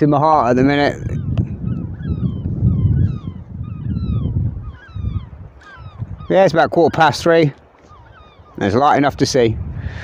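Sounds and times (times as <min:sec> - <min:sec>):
birds calling: 0:00.0 - 0:10.0.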